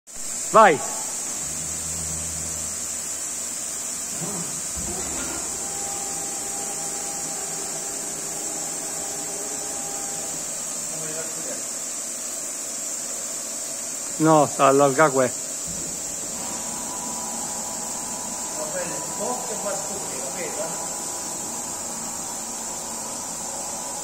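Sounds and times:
woodworking machine whining: 1.1s - 11.7s, 14.2s - 24.0s.

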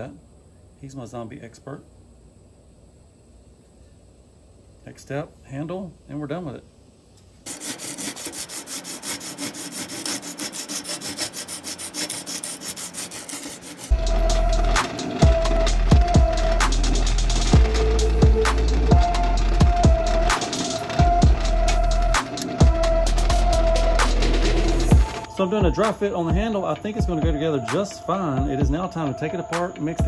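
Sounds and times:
rasping strokes on wood: 7.5s - 25.0s
drill press humming: 7.5s - 25.4s.

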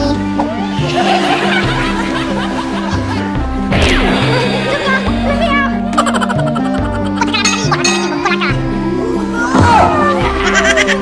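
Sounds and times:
upbeat background music: 0.0s - 11.0s
men laughing: 0.7s - 3.6s, 5.9s - 8.8s, 10.1s - 11.0s.

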